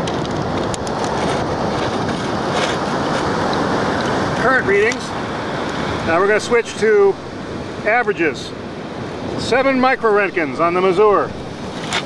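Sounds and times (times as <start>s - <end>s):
ocean waves breaking: 0.0s - 12.0s.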